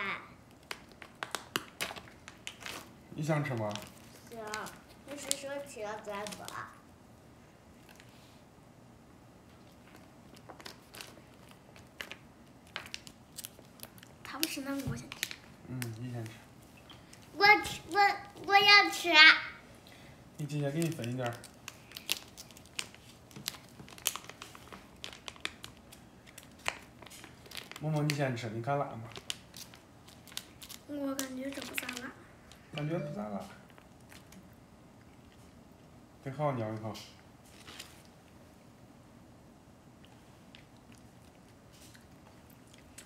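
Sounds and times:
plastic snack packet crinkling: 0.4s - 6.8s, 9.6s - 18.3s, 20.5s - 32.9s.

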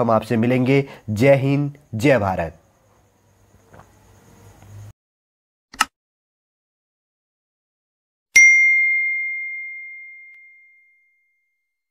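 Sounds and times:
bell chime ding: 8.4s - 11.7s.

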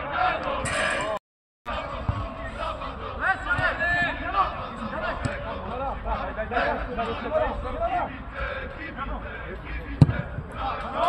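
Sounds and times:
distant players shouting: 1.7s - 11.0s
football kick thud: 10.0s - 10.4s.

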